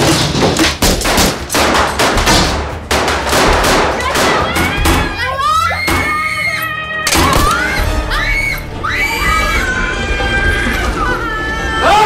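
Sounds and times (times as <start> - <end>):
rapid pistol shots: 0.8 - 4.4.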